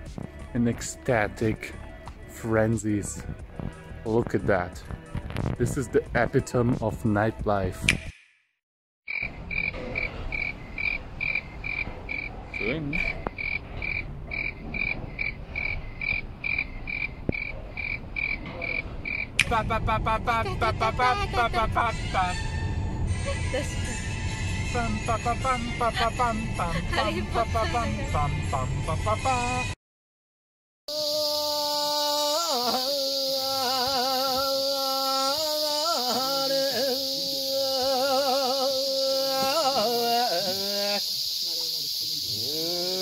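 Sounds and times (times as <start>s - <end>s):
sharp click: 7.9s - 8.3s
person singing folk song: 19.4s - 22.4s, 24.7s - 29.8s, 30.9s - 41.0s.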